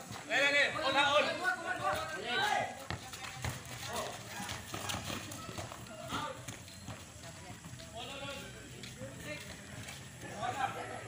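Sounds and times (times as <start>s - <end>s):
footfalls on concrete: 0.0s - 11.0s
voices shouting: 0.2s - 2.9s.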